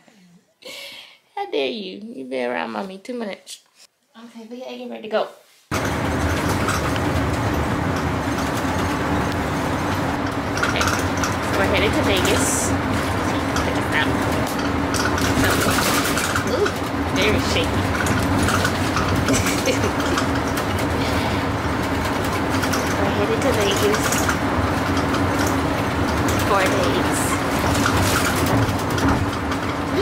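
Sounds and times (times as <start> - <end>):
bus engine and road noise: 5.7 - 30.0
vehicle cabin rumble: 5.7 - 30.0.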